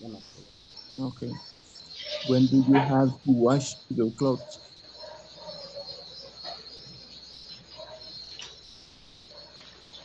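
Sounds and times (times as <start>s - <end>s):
high-pitched insect chirring: 0.0s - 10.0s.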